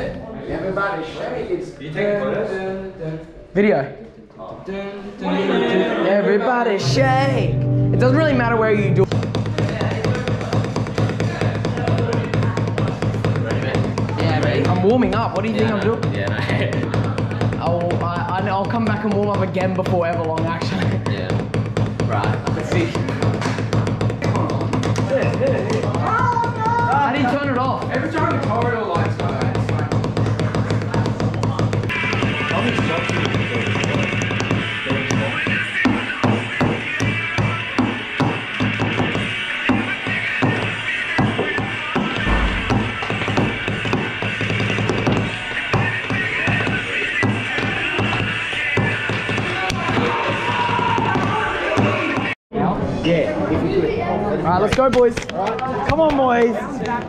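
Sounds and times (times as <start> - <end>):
noisy crowd voices: 0.0 - 57.0
music playing: 6.8 - 12.2, 31.9 - 50.3.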